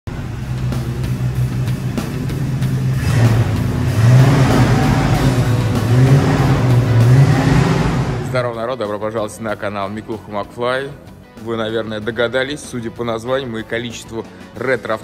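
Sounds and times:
car engine revving: 0.1 - 8.5.

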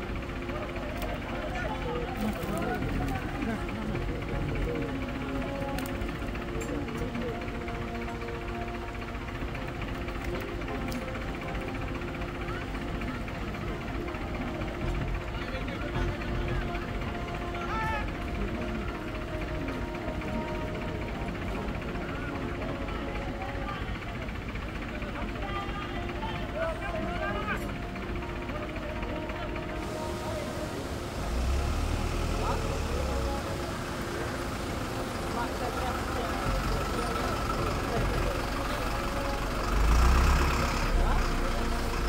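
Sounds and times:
men talking in a crowd: 0.0 - 42.0
music with long held tones: 0.0 - 42.0
truck engine rumbling: 0.0 - 42.0.

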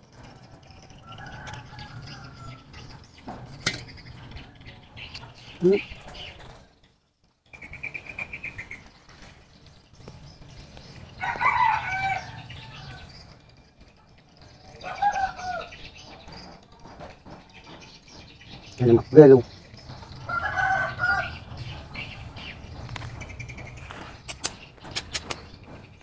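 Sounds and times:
bird chirping trill: 0.0 - 26.0.

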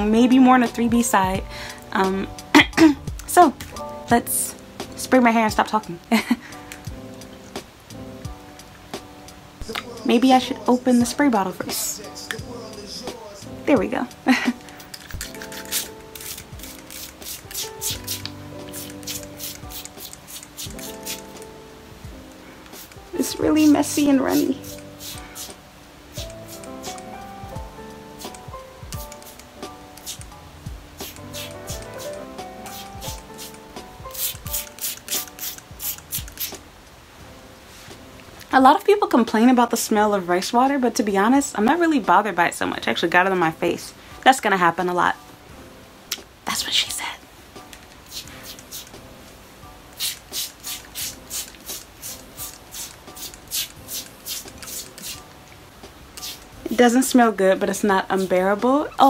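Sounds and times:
background music with steady beat: 0.0 - 59.0
spray bottle squirts: 14.6 - 21.4, 22.7 - 23.0, 24.3 - 27.1, 28.2 - 28.4, 29.0 - 30.3, 31.0 - 36.6, 48.0 - 49.0, 50.0 - 55.2, 56.2 - 56.5.

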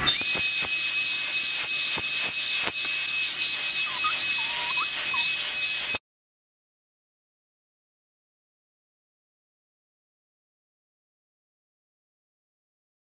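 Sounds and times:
hot-air brush dryer blowing: 0.0 - 6.0.

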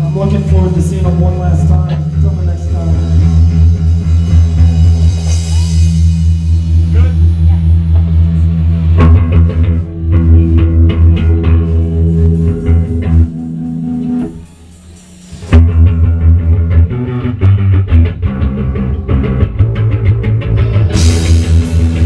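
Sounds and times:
heavy bass guitar: 0.0 - 22.0
post-punk band playing live: 0.0 - 22.0.

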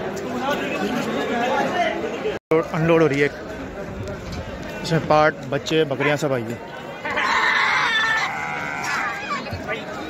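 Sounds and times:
goats bleating: 7.1 - 9.4.

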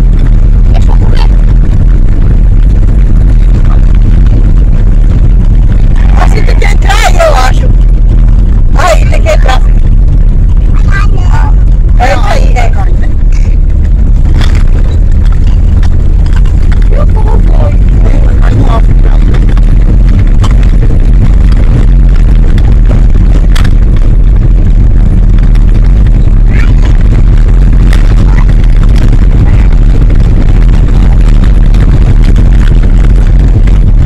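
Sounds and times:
car engine and road rumble: 0.0 - 34.0
voices: 0.6 - 1.5, 5.6 - 7.8, 8.6 - 9.8, 10.5 - 13.6, 14.4 - 19.6, 26.1 - 30.2.

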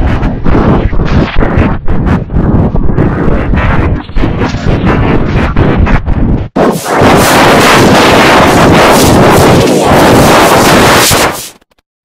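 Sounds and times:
harsh distorted noise: 0.0 - 11.7.

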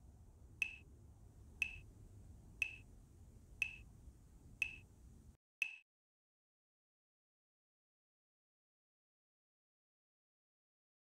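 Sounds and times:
faint low hum: 0.0 - 5.4
sharp metronome ticks: 0.6 - 0.9, 1.6 - 1.9, 2.6 - 2.9, 3.6 - 3.9, 4.6 - 4.9, 5.6 - 5.8.

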